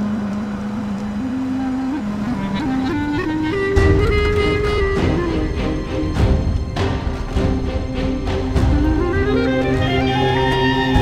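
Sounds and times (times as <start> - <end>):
background score music: 0.0 - 11.0.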